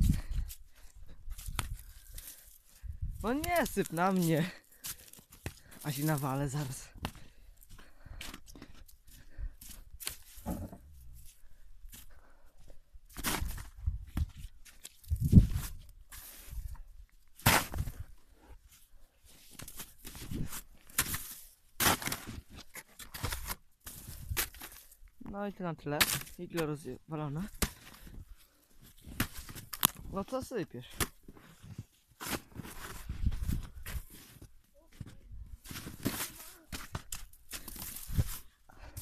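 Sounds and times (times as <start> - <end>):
heavy thump: 10.4 - 10.9
shovel scraping packed snow: 35.7 - 36.6.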